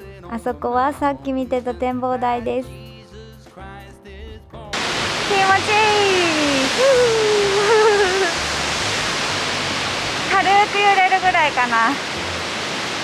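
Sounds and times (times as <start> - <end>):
background music: 0.0 - 13.0
woman's voice: 0.2 - 2.7, 5.3 - 8.4, 10.3 - 12.0
waterfall rushing: 4.8 - 13.0.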